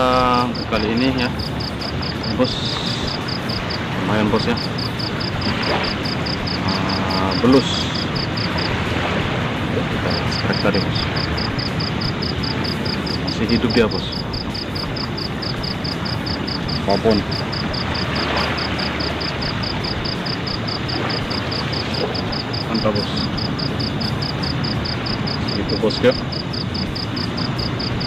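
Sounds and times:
faint high-pitched pulsing: 0.0s - 28.0s
steady rushing outdoor noise: 0.0s - 28.0s.

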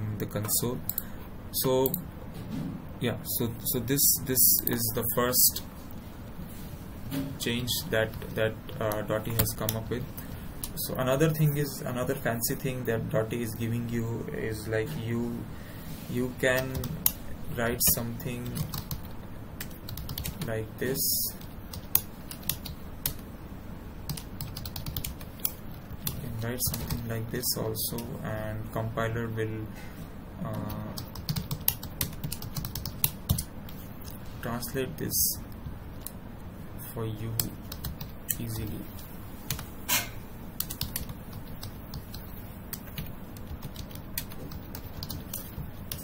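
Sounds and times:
computer keyboard typing: 7.6s - 10.8s, 16.4s - 23.2s, 24.1s - 28.1s, 30.5s - 34.2s, 37.3s - 38.8s, 39.5s - 39.7s, 40.6s - 46.0s.

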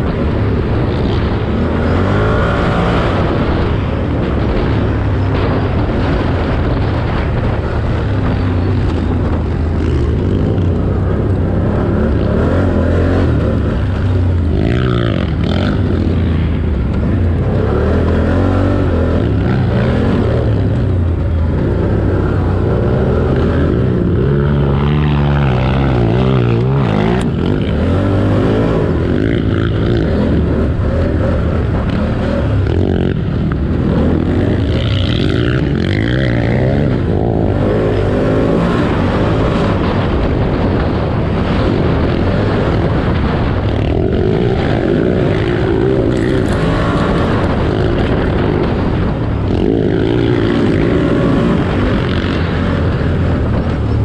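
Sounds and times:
atv engine revving: 0.0s - 54.0s
wind rushing over microphone: 0.0s - 54.0s.

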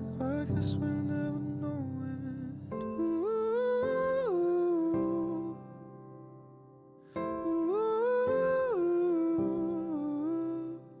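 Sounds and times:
soft musical accompaniment: 0.0s - 11.0s.

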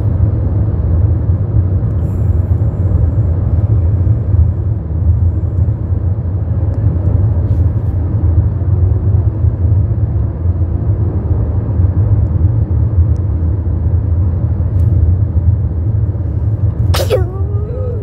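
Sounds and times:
car driving interior rumble: 0.0s - 18.0s.

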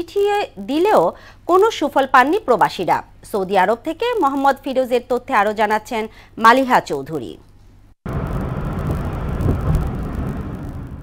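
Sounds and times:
traffic and road noise: 8.1s - 11.0s.

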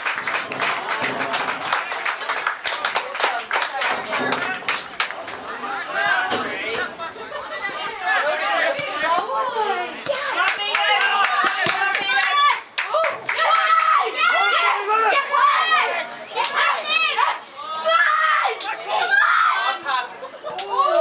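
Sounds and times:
voices calling out: 0.5s - 21.0s.

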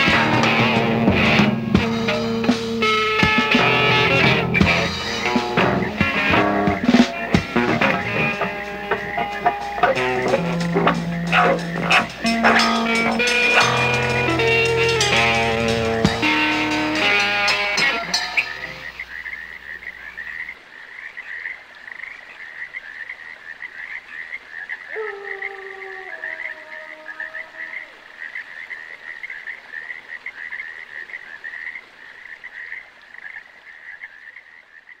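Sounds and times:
frogs croaking: 1.4s - 35.0s.

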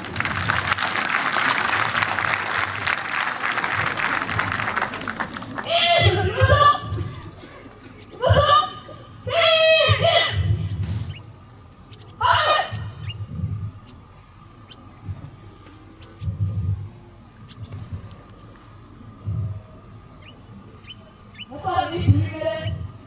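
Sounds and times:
low thuds: 3.6s - 23.0s.

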